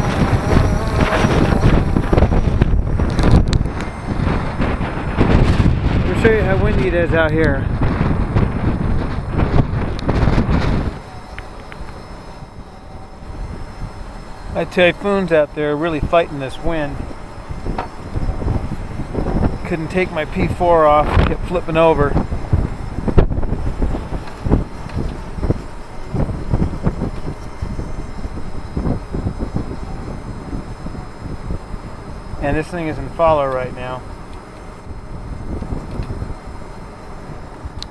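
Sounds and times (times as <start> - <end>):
heavy rumbling roar: 0.0 - 37.9
wind buffeting microphone: 0.0 - 37.9
wind hiss: 0.0 - 37.9.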